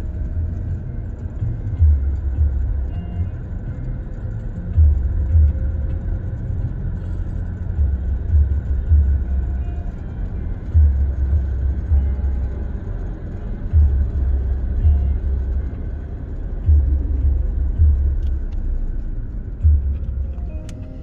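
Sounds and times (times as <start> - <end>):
car road and engine rumble: 0.0 - 21.0.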